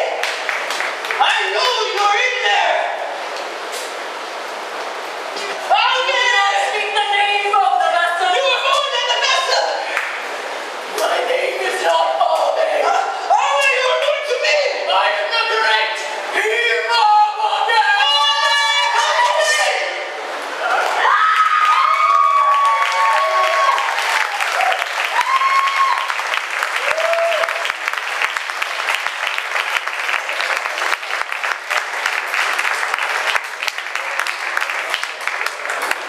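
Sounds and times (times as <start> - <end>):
audience applauding: 0.0 - 2.1, 9.9 - 10.4, 20.7 - 36.0
whoops and cheers: 20.8 - 27.7.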